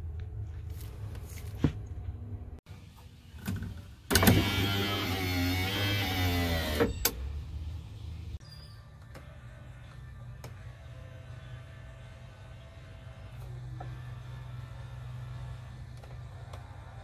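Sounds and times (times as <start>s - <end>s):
electric window motor whine: 4.1s - 7.0s, 12.1s - 16.9s.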